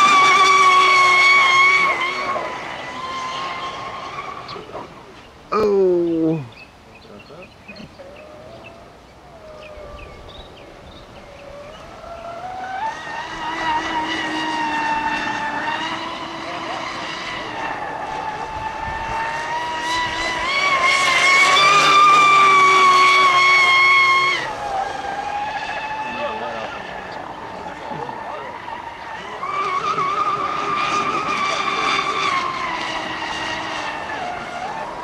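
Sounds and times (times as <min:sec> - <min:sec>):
electric motor whining: 0:00.0 - 0:05.0, 0:10.8 - 0:35.0.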